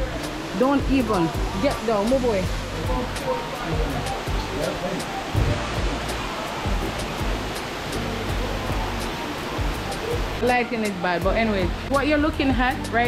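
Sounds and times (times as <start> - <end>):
faint voices: 0.0 - 11.2
music: 0.0 - 13.0
waterfall rushing: 0.0 - 13.0.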